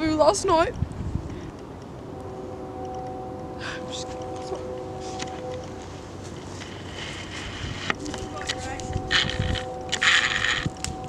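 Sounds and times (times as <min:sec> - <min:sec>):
wind noise on microphone: 0:00.0 - 0:11.0
distant motor hum: 0:01.3 - 0:11.0.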